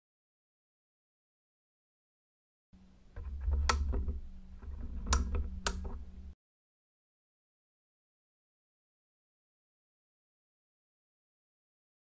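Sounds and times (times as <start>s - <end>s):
faint steady hum: 2.8s - 6.4s
handling noise with low rumble: 2.8s - 6.4s.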